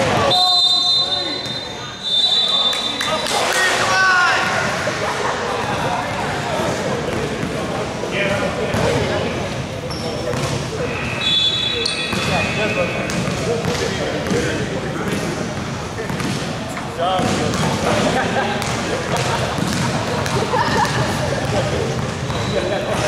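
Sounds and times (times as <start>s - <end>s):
players chattering: 0.0s - 23.0s
basketball bouncing on court: 8.7s - 9.0s, 12.1s - 14.5s, 15.1s - 16.6s, 17.2s - 23.0s
high squeak: 10.9s - 12.8s.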